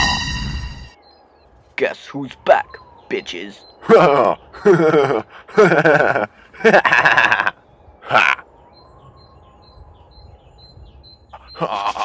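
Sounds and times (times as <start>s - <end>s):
faint high bird chirps: 0.0s - 4.7s, 7.6s - 12.0s.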